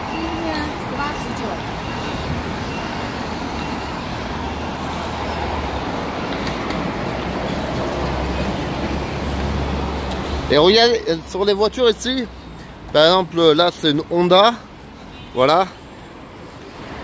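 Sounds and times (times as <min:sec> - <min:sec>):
road traffic passing: 0:00.0 - 0:17.0.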